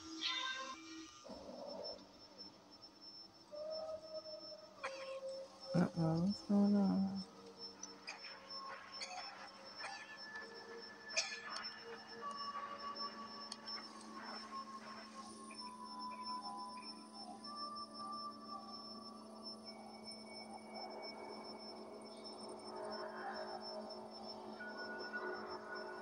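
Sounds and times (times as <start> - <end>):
eerie drone tones: 0.0 - 26.0.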